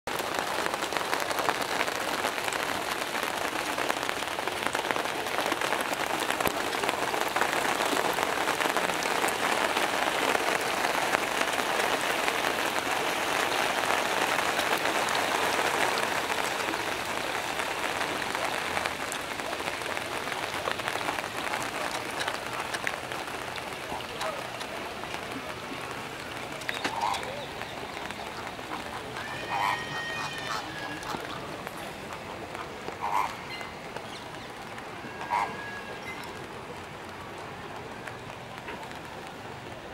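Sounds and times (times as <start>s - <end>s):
heavy rain on pond: 0.0s - 39.9s.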